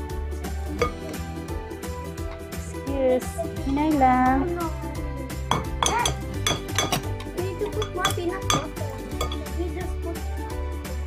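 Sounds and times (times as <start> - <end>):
light background music: 0.0 - 11.0
spoons clinking on glass bowls: 0.8 - 1.2, 5.5 - 9.5.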